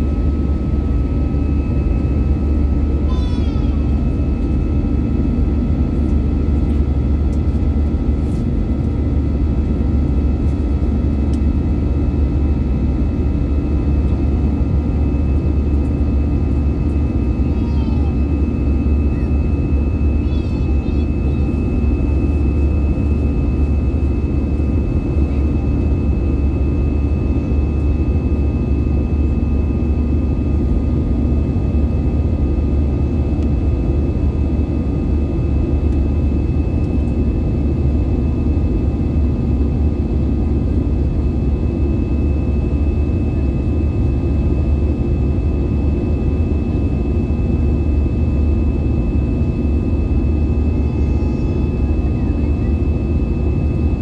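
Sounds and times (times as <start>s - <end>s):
aircraft cabin rumble: 0.0s - 54.0s.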